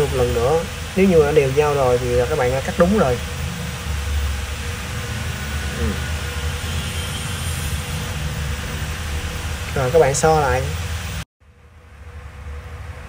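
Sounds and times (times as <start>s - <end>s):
person speaking: 0.0s - 3.5s, 5.6s - 6.2s, 9.7s - 10.8s
faint hiss: 0.0s - 11.2s
low background rumble: 0.0s - 13.0s.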